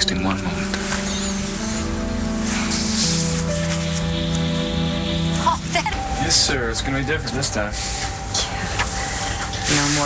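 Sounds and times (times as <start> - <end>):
music with sustained chords: 0.0 - 10.0.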